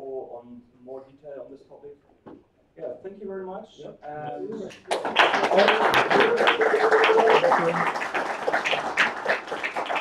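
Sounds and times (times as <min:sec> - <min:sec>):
audience applauding: 0:04.7 - 0:10.0.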